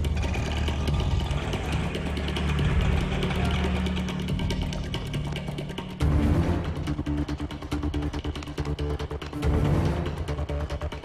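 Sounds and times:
auto-rickshaw engine running: 0:00.0 - 0:11.0
film background music: 0:00.0 - 0:11.0.

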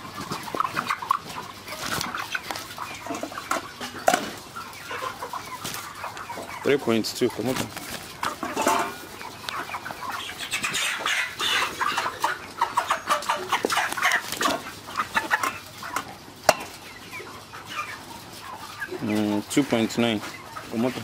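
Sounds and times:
birds scuffling: 0:00.0 - 0:21.0
chickens clucking: 0:00.0 - 0:21.0.

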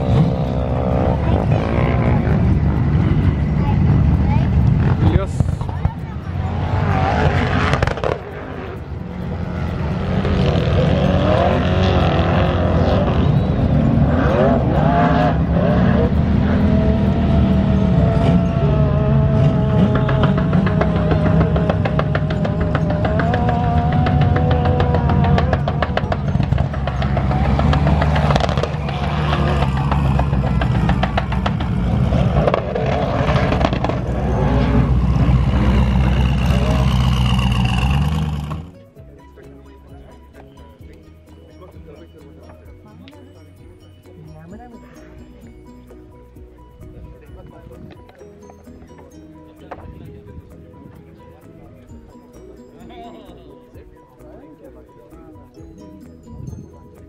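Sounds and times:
off-road engines revving: 0:00.0 - 0:57.0.

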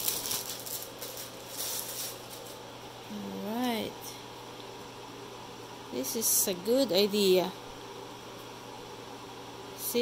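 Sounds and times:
plastic wrapping crinkling: 0:00.0 - 0:02.7
faint steady hum: 0:00.0 - 0:10.0.

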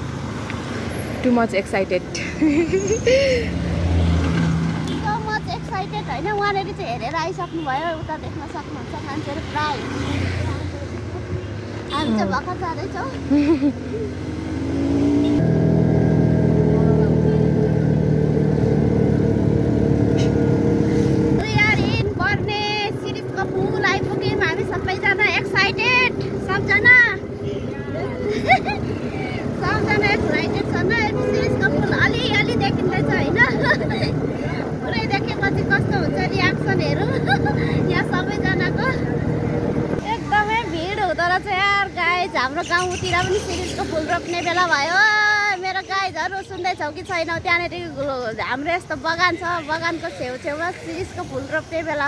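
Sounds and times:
auto-rickshaw engine running: 0:00.0 - 0:52.0
passengers talking and laughing: 0:01.2 - 0:03.7, 0:04.9 - 0:14.3, 0:21.3 - 0:52.0.

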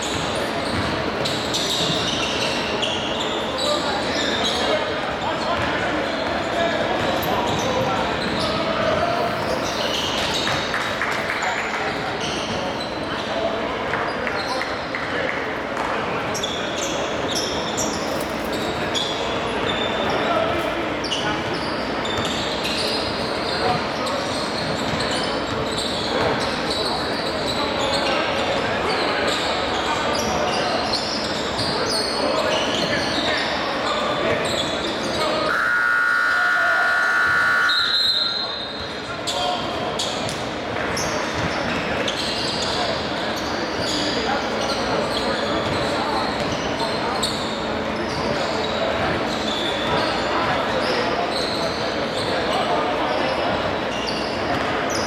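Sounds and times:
many voices: 0:00.0 - 0:55.0
scoreboard buzzer horn: 0:35.5 - 0:38.2.

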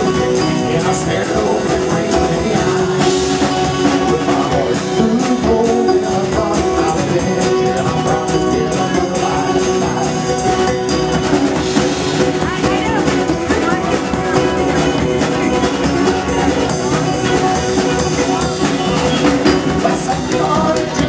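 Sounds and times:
live band playing instrumental: 0:00.0 - 0:21.0
steady drum beat: 0:00.0 - 0:21.0.

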